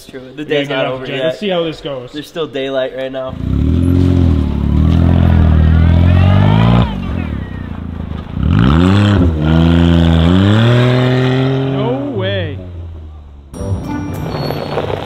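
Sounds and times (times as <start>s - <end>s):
small car engine revving: 3.3s - 12.8s.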